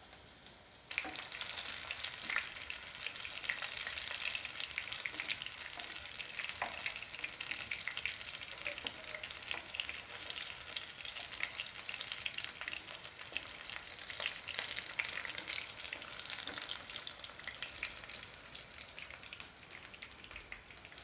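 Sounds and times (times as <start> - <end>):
potatoes sizzling in hot oil: 0.0 - 21.0.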